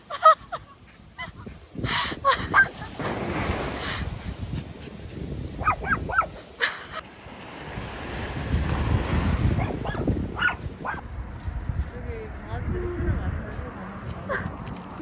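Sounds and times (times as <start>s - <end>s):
waves breaking on beach: 0.0s - 11.0s
small dog yipping: 5.6s - 6.3s, 9.6s - 11.0s.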